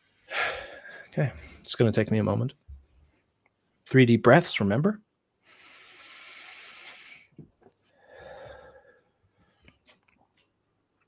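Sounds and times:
man breathing in deeply: 0.2s - 1.1s, 5.4s - 9.7s.

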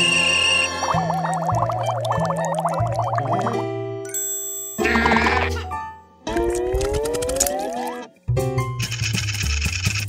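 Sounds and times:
cartoon music: 0.0s - 3.6s, 4.8s - 8.1s
comic warbling vocal effect: 0.9s - 3.6s.

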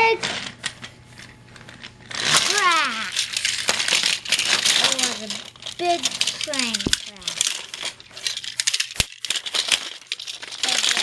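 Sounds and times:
plastic toy trains clattering: 1.6s - 11.0s.

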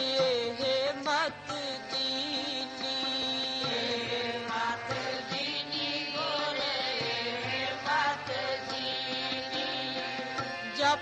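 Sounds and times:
devotional chanting: 0.0s - 11.0s.

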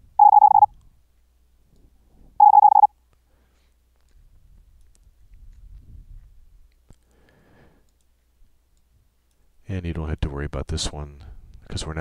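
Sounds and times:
morse code tone bursts: 0.1s - 0.7s, 2.4s - 2.9s.

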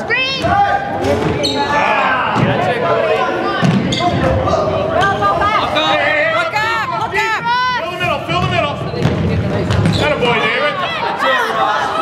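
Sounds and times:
spectators shouting: 0.0s - 8.4s, 10.0s - 12.0s
basketball dribbling: 8.0s - 10.2s.

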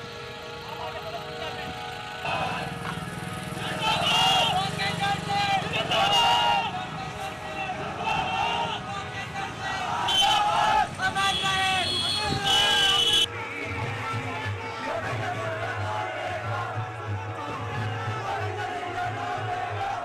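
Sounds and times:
background music: 0.0s - 10.2s, 13.0s - 20.0s
vehicle engines rumbling: 0.0s - 20.0s
crowd chanting: 2.2s - 11.5s, 12.3s - 20.0s.

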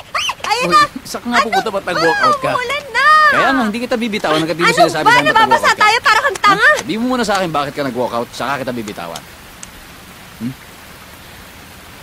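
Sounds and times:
heavy rain: 0.0s - 12.0s
low vocal sound: 10.4s - 10.6s.

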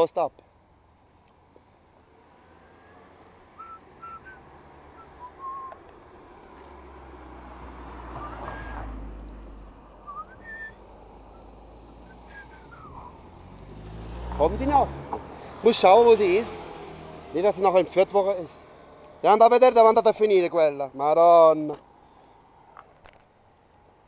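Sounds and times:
faint high whistled notes: 10.1s - 13.2s.

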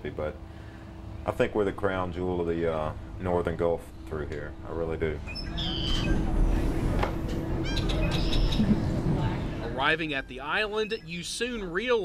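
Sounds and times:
ferry engine rumbling: 0.0s - 12.0s
bird chirps: 5.2s - 6.2s, 7.6s - 8.7s, 10.1s - 11.4s.

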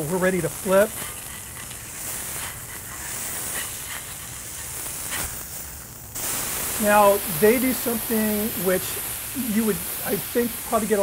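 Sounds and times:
burger patty sizzling on griddle: 0.0s - 11.0s.

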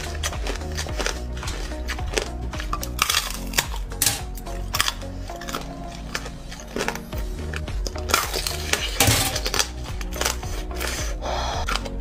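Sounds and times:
background music: 0.0s - 12.0s
crunching bites and chewing: 0.0s - 12.0s.

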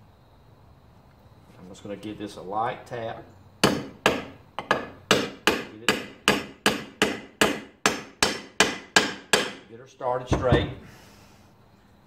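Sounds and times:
hammer tapping metal: 3.6s - 9.6s.

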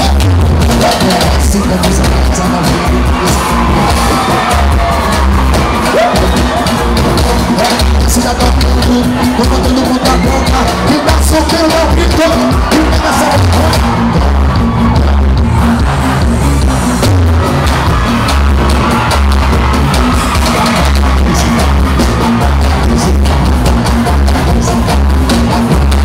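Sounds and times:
heavy bass beat: 0.0s - 26.0s
loud live band music: 0.0s - 26.0s.

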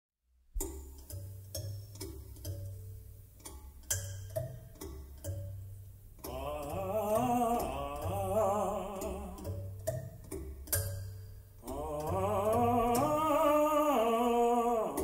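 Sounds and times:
deep ringing low tones: 3.9s - 15.0s
wavering singing voice: 6.3s - 9.7s, 11.6s - 15.0s.

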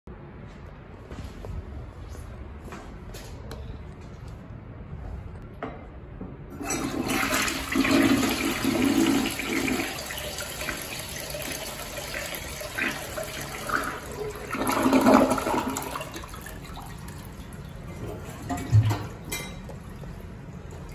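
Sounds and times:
toilet flushing: 6.5s - 20.9s.

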